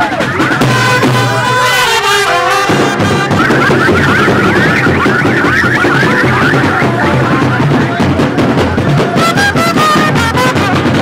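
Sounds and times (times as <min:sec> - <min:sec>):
fast warbling high line: 0:00.0 - 0:08.1
band music: 0:00.0 - 0:11.0.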